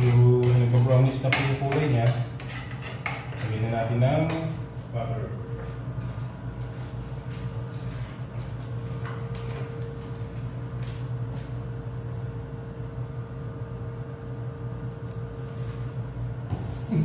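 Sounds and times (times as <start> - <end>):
kitchen hum: 0.0 - 17.0.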